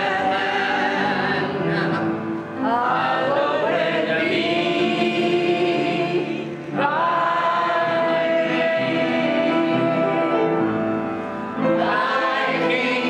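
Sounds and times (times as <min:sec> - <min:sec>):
choir singing church music: 0:00.0 - 0:13.0.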